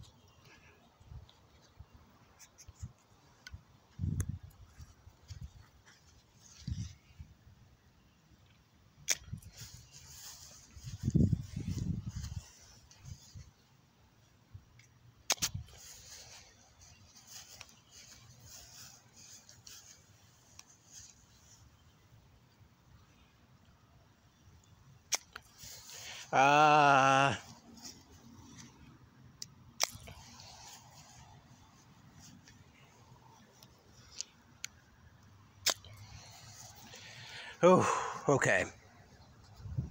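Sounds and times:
footsteps rustling through grass: 9.4s - 13.6s, 15.5s - 22.0s, 30.0s - 34.5s.

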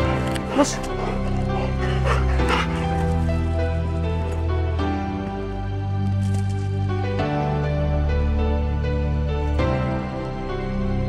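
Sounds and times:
background music with chords: 0.0s - 11.0s
dog barking: 0.4s - 3.1s.

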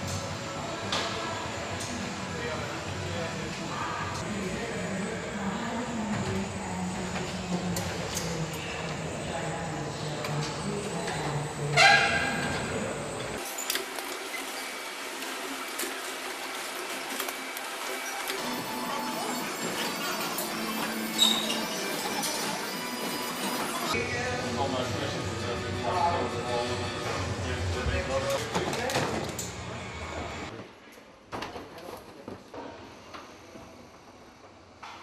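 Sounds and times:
overhead rail conveyor running: 0.0s - 30.6s.

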